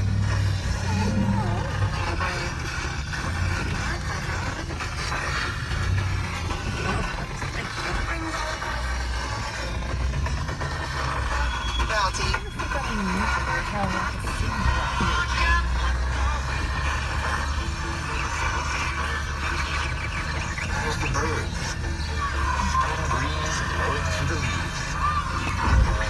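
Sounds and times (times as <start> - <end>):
truck engine low rumble: 0.0 - 26.0
faint radio voice: 11.8 - 26.0.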